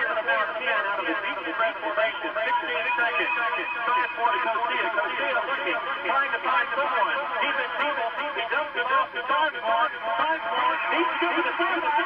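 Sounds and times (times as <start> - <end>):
man commentating: 0.0 - 12.0.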